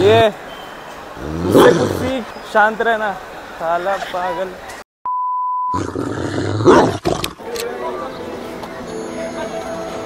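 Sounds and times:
loud growling roar: 1.2 - 2.1, 5.8 - 7.4.

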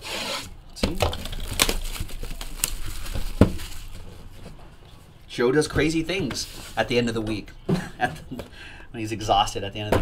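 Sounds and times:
cardboard box rustling: 1.1 - 4.6.

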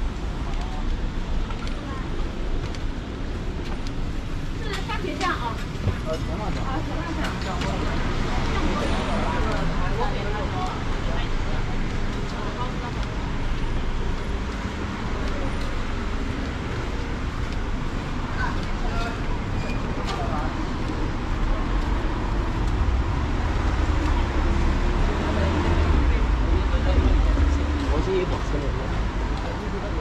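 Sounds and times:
indistinct voices of passersby: 0.0 - 30.0
traffic on road: 0.0 - 30.0.

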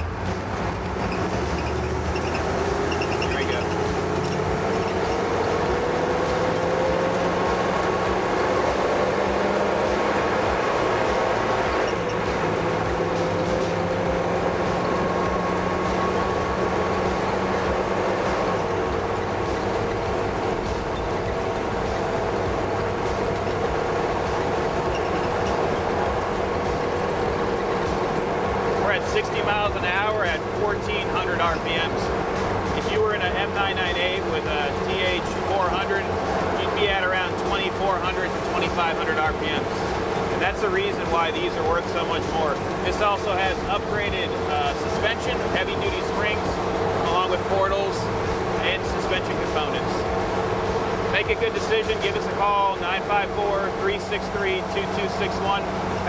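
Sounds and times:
diesel engine accelerating: 0.0 - 56.0
wind and road noise: 0.0 - 56.0.

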